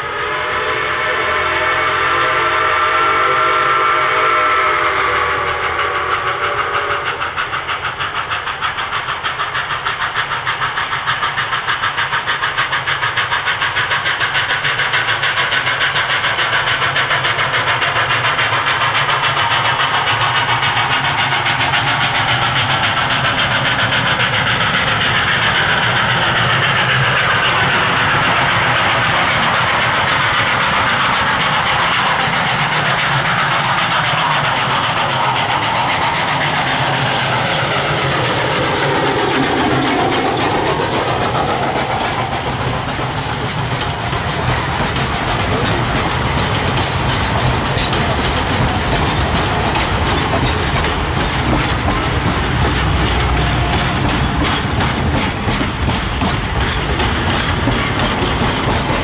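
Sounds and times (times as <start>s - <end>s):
steam whistle: 0.0s - 7.5s
steam locomotive exhaust beat: 0.0s - 59.0s.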